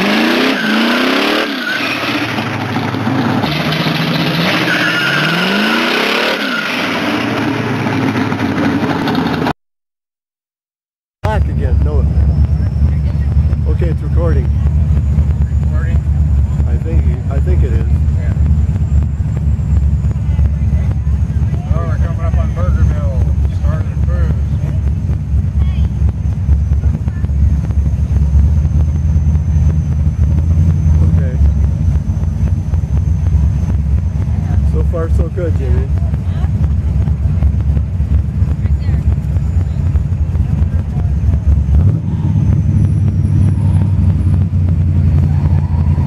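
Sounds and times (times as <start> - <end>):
car engine low rumble: 0.0 - 9.6, 11.2 - 46.0
people talking: 11.2 - 18.5, 20.1 - 26.1, 26.7 - 27.8, 30.9 - 32.1, 34.2 - 37.4, 38.4 - 42.5.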